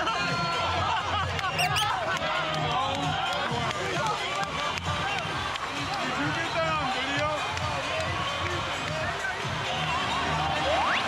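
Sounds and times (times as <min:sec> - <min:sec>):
crowd shouting and cheering: 0:00.0 - 0:11.0
music: 0:00.0 - 0:11.0.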